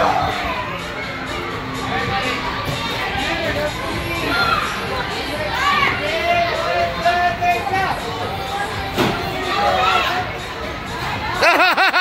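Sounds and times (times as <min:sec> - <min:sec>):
steady background noise: 0:00.0 - 0:12.0
children shouting: 0:04.1 - 0:07.3, 0:08.4 - 0:10.3.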